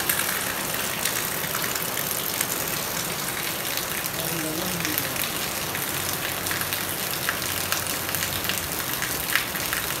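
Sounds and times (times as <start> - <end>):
heavy rain on wet concrete: 0.0 - 10.0.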